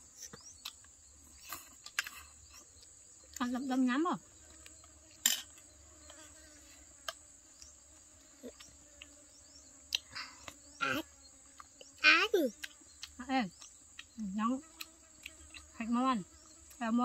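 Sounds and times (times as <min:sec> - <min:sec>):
insects droning: 0:00.0 - 0:17.0.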